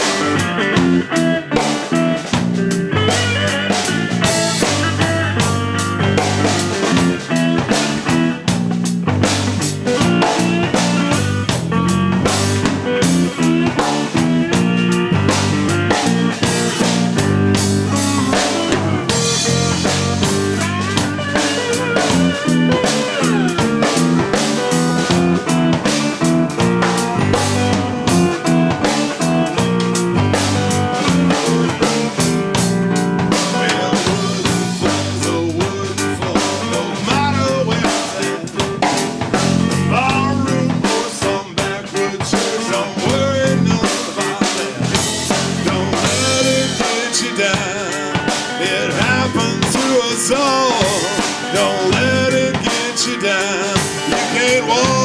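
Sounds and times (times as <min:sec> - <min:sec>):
drum kit beat: 0:00.0 - 0:55.0
electric bass: 0:00.0 - 0:55.0
slide electric guitar: 0:00.0 - 0:55.0.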